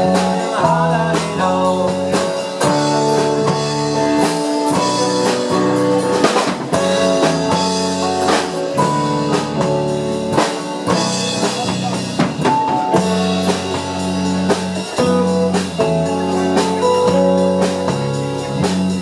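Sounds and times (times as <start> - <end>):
bass guitar: 0.0 - 19.0
drum kit steady beat: 0.0 - 19.0
electric guitar: 0.0 - 19.0
keyboard holding chords: 0.0 - 19.0.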